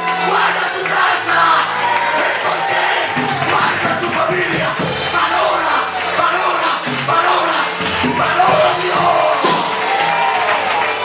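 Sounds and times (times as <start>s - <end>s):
congregation voices: 0.0s - 9.9s
live worship music: 0.0s - 11.0s
man calling into a microphone: 3.2s - 9.7s.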